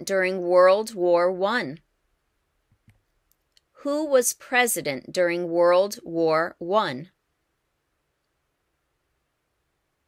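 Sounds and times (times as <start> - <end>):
person speaking: 0.0 - 1.8, 3.8 - 7.2.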